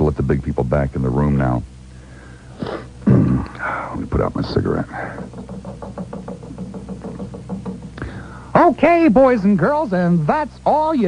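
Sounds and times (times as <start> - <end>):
held low notes: 2.9 - 9.2
quick ticking beat: 4.0 - 9.6.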